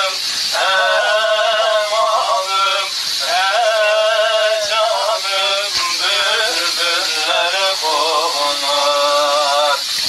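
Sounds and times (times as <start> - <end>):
man singing a folk song: 0.0 - 9.8.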